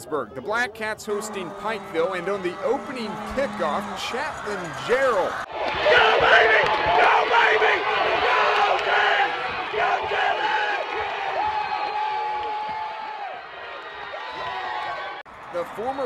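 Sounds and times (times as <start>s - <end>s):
crowd cheering and yelling: 1.0s - 16.0s.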